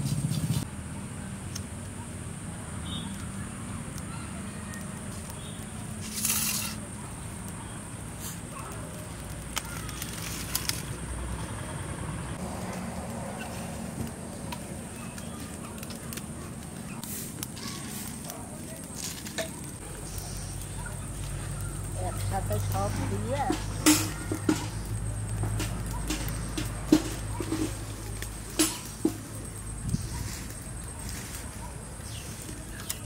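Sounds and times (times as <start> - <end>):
fire crackling: 0.0 - 33.0
twigs and leaves rustling: 2.9 - 33.0
twigs snapping: 8.3 - 11.2, 27.4 - 33.0.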